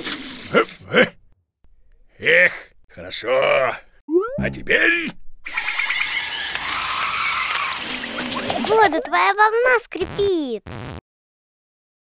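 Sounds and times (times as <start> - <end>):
squeaky scraping screech: 5.5 - 8.6.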